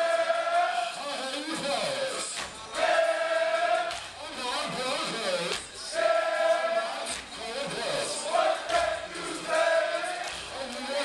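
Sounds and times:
group singing in unison: 0.0 - 1.0, 2.1 - 4.1, 5.7 - 11.0.

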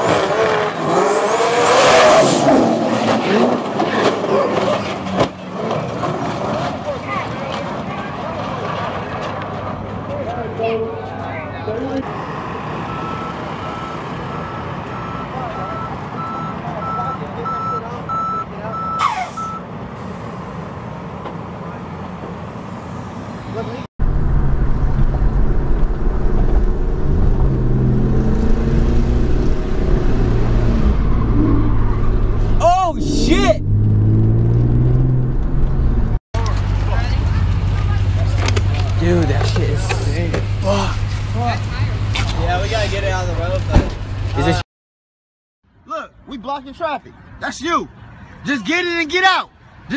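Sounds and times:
outdoor crowd noise: 0.0 - 23.9, 36.1 - 44.6, 45.6 - 49.9
voices talking: 6.6 - 19.6, 32.6 - 33.7, 36.4 - 44.6, 45.8 - 49.9
vehicle reversing alarm beeping: 12.8 - 19.7
car engine droning: 20.0 - 44.5.

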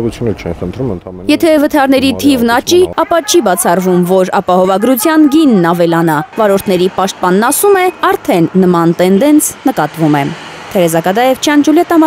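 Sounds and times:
narrator talking: 0.0 - 12.0
street noise hiss: 0.0 - 12.0.

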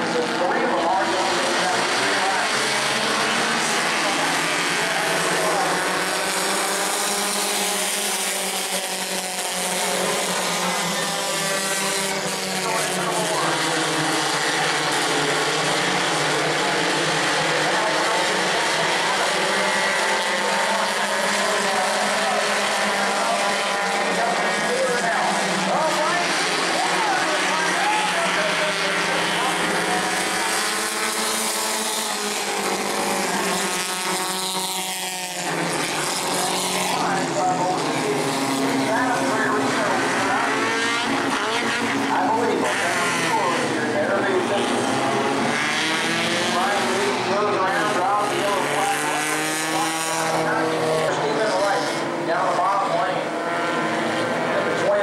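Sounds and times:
stock car engines racing: 0.0 - 55.0.

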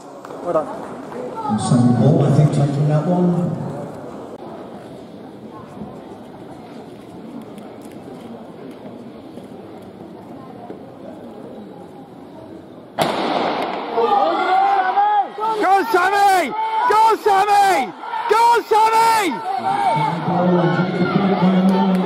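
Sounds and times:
murmur of sports hall: 0.0 - 22.0
starting pistol crack: 13.0 - 14.0
spectators shouting encouragement: 13.9 - 22.0.

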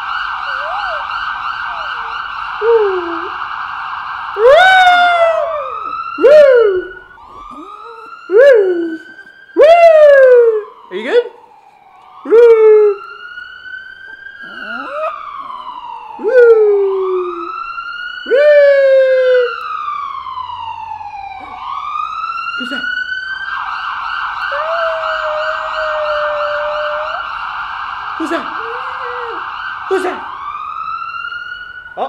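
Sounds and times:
ambulance siren wailing: 0.0 - 32.0.

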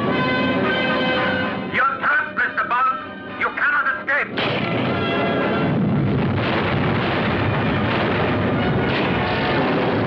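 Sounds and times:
rumble of explosions and fire: 3.4 - 10.0
explosion on water: 4.4 - 10.0.

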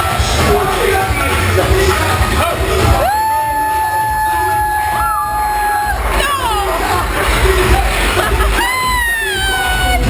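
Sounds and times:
bar music: 0.0 - 10.0
crowd noise: 0.0 - 10.0
person whooping: 3.0 - 6.6.

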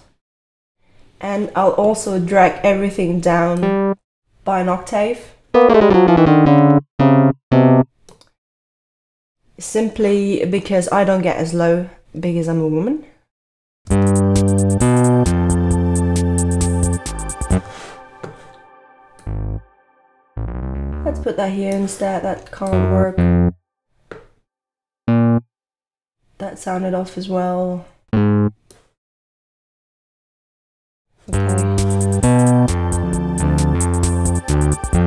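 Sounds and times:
plucked synth bass note: 3.6 - 4.0, 5.6 - 7.9, 19.1 - 19.8, 20.4 - 21.4, 22.7 - 23.6, 25.1 - 25.4, 28.2 - 28.6
synthesized keyboard bass notes: 3.6 - 4.0, 5.6 - 7.9, 13.9 - 17.7, 19.1 - 21.4, 22.6 - 23.6, 25.1 - 25.5, 28.2 - 28.6, 31.4 - 35.0
short synth blip: 5.6 - 7.9, 25.1 - 25.4, 28.2 - 28.6.

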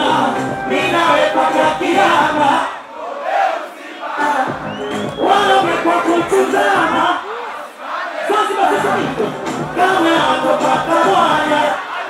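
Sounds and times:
music beat: 0.0 - 2.5, 4.2 - 7.1, 8.8 - 11.8
concert crowd screaming: 0.0 - 12.0.

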